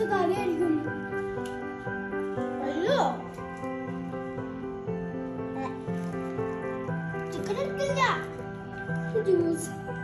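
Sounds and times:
background music of sustained notes: 0.0s - 10.0s.

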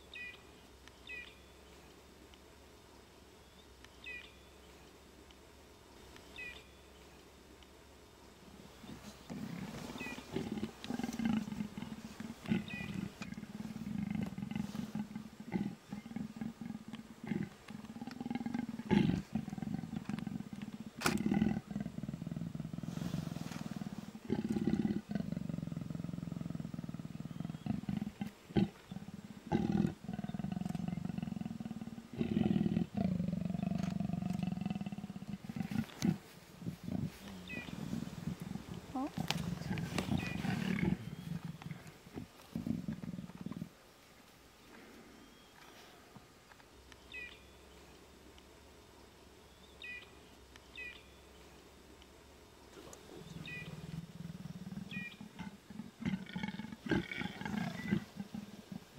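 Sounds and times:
leopards growling: 8.4s - 43.8s, 52.7s - 58.9s.

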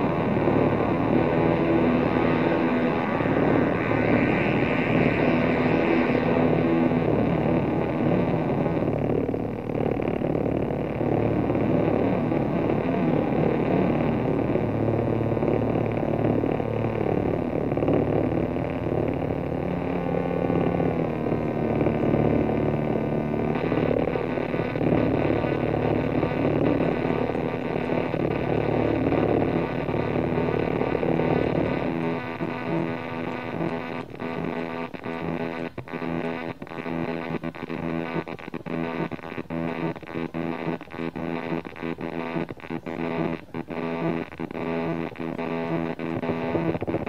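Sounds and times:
distorted electronic drone: 0.0s - 47.0s.

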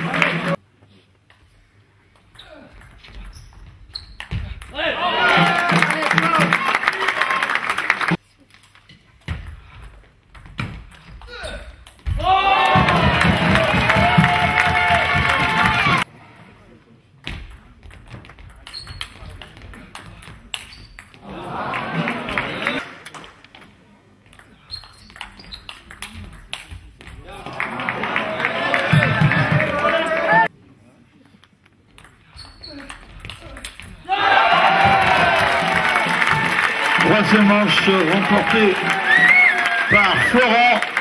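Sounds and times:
crowd shouting and cheering: 0.0s - 0.6s, 4.8s - 8.2s, 12.1s - 16.1s, 21.2s - 23.0s, 27.2s - 30.5s, 34.0s - 41.0s.

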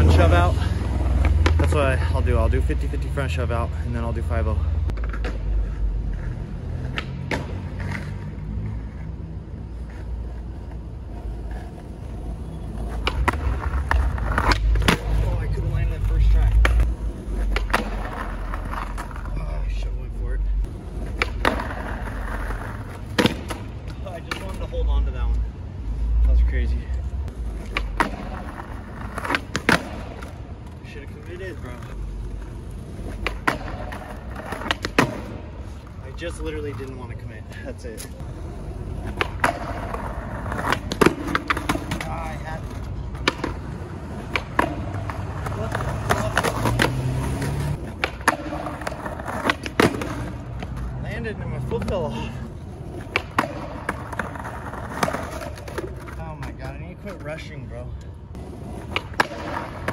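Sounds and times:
skateboard rolling on asphalt: 0.0s - 59.9s
skateboard clacks: 0.8s - 1.8s, 4.9s - 8.3s, 9.9s - 19.4s, 20.7s - 24.7s, 27.3s - 35.5s, 38.0s - 51.0s, 51.6s - 57.2s, 58.3s - 59.9s
skateboard trucks grinding curb: 4.4s - 24.8s, 27.3s - 57.6s, 58.4s - 59.9s.

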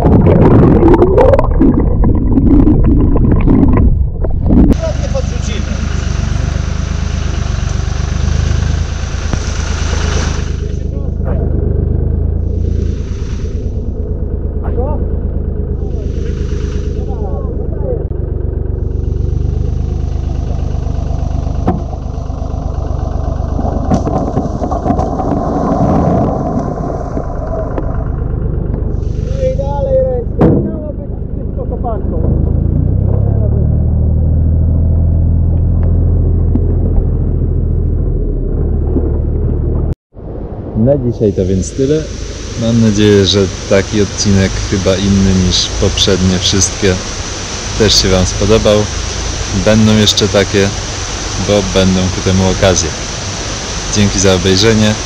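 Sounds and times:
rocks rumbling: 0.0s - 4.8s, 21.7s - 29.2s
water splashing: 0.0s - 4.8s
dumper engine running: 0.0s - 55.0s.

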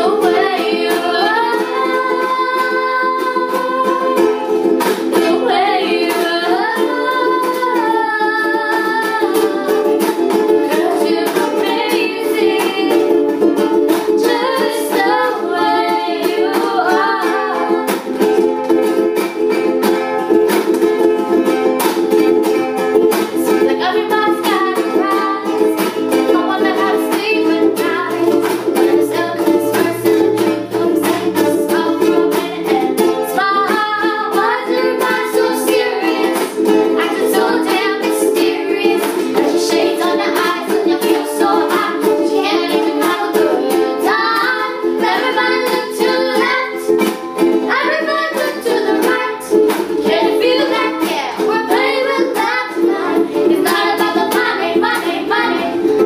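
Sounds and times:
girls singing: 0.0s - 56.0s
ukuleles strumming chords: 0.0s - 56.0s.

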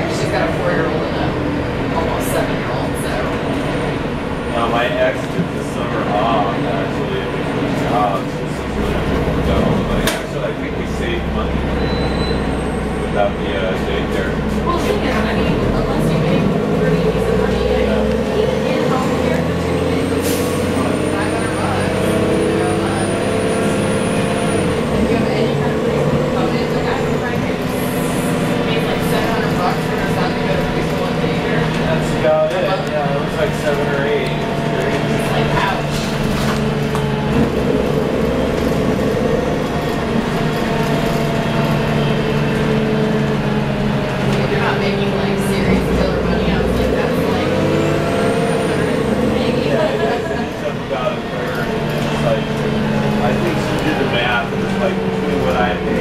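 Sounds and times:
diesel bus engine droning: 0.0s - 56.0s.

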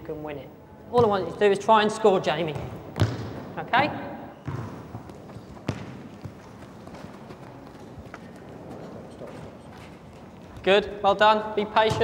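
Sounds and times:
low background noise: 0.0s - 12.0s
football being kicked: 2.5s - 3.5s, 4.4s - 5.0s, 5.6s - 6.4s.

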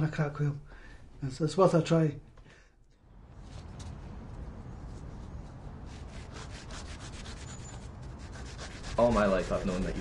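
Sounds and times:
cloth scrubbing on concrete: 5.8s - 10.0s.

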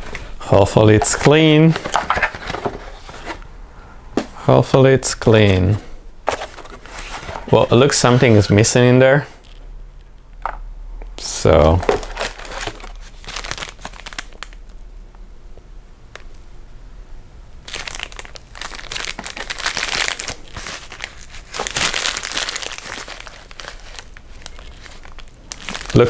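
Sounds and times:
plastic bags crinkling: 11.6s - 14.8s, 17.7s - 26.0s.

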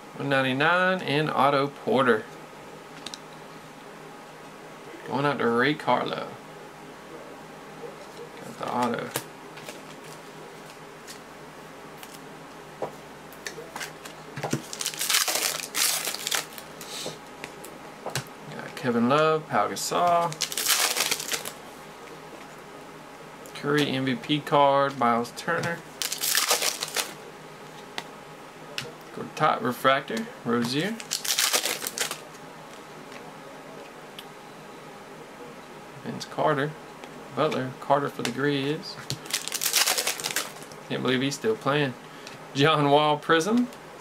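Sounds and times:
trading cards rustling: 13.4s - 17.1s, 19.9s - 21.6s, 26.0s - 27.2s, 30.6s - 32.2s, 39.1s - 40.8s
foil wrapper crinkling: 13.8s - 16.7s, 20.2s - 21.6s, 25.9s - 27.2s, 30.8s - 32.2s, 39.1s - 40.8s.

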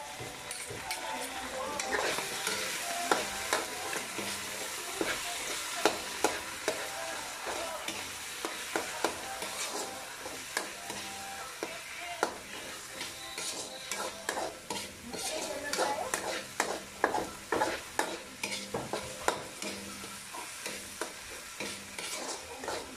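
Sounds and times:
food sizzling in a wok: 0.0s - 22.9s
metal spoon scraping a pan: 0.1s - 22.9s.

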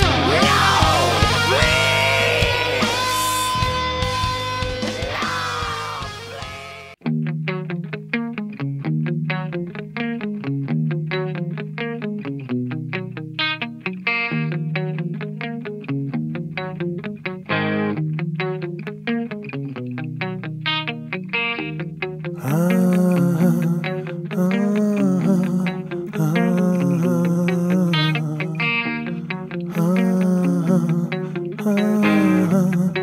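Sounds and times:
heavy metal music: 0.0s - 7.0s
electric guitar picking single notes: 0.0s - 33.0s.

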